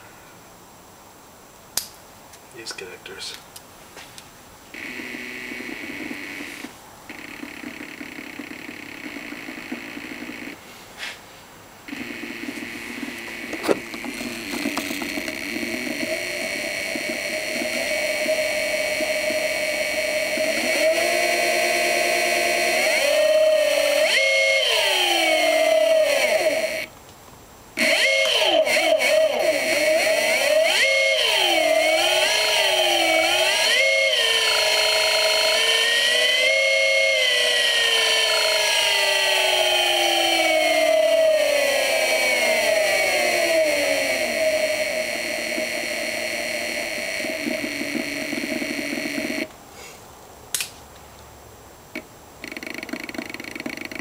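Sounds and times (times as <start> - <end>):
electric motor whining: 4.7 - 10.6, 11.9 - 26.9, 27.8 - 49.5.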